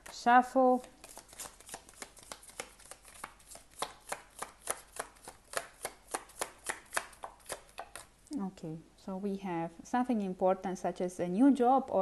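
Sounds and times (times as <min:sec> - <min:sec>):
cards being shuffled: 0:00.0 - 0:08.1.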